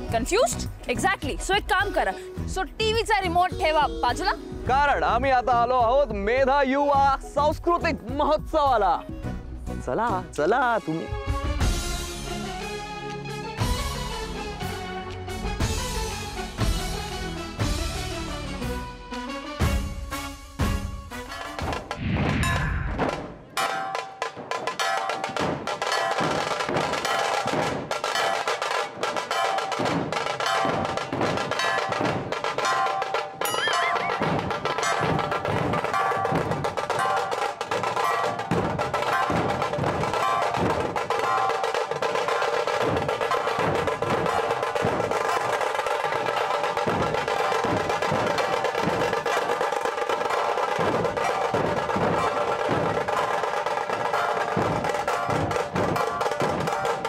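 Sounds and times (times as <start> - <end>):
rapid drum rolls: 20.6 - 57.0
dhol drums beaten with sticks: 23.0 - 57.0.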